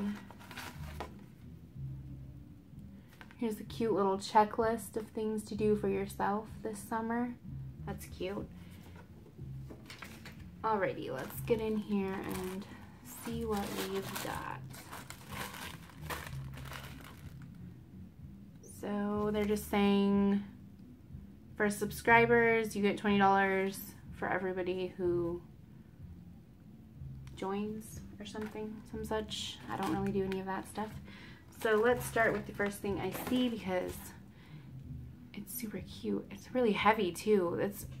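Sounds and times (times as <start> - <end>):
paper and cardboard rustling: 0.0 - 1.3, 9.7 - 10.4, 11.1 - 17.4, 31.5 - 34.0.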